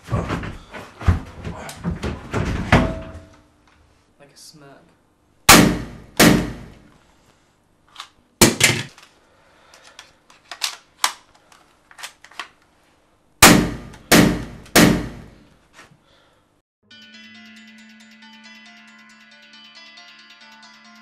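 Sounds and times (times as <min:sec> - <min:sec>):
pistol shots ringing indoors: 0:05.5 - 0:06.8, 0:13.4 - 0:15.4
gun handling clicks: 0:08.9 - 0:12.6.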